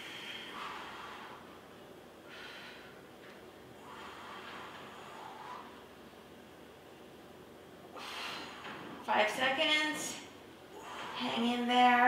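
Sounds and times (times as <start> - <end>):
person's sharp noisy breath: 10.7 - 11.5.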